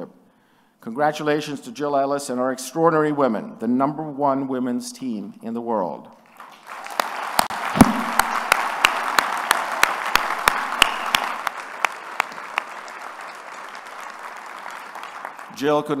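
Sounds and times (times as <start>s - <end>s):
audience applauding: 6.2s - 16.0s
sharp close hand claps: 6.3s - 15.5s.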